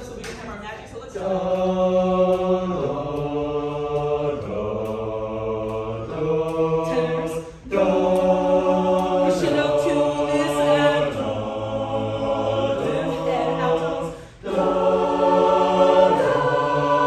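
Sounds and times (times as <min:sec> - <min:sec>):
choir singing a cappella: 0:01.1 - 0:17.0.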